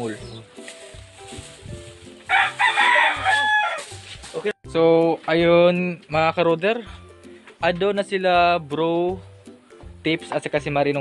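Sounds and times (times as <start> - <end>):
rooster crowing: 2.3 - 3.9.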